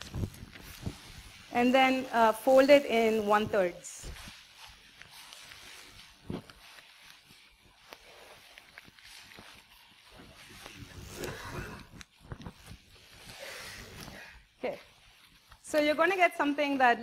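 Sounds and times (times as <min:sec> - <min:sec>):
paper being folded and creased: 0:00.0 - 0:16.3.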